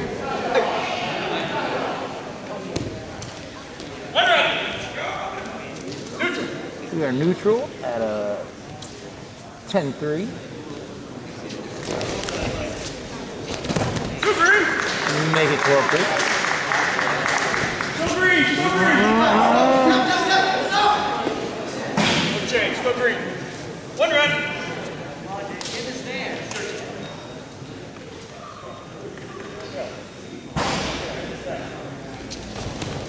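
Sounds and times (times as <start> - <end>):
spectators yelling: 18.0 - 21.2.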